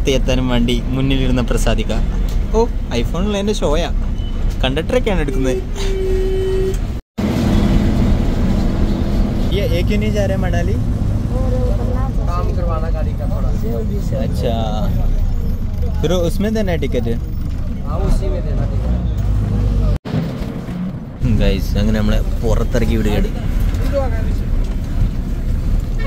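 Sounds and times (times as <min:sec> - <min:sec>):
bus engine low rumble: 0:00.0 - 0:26.0
road noise: 0:00.0 - 0:26.0.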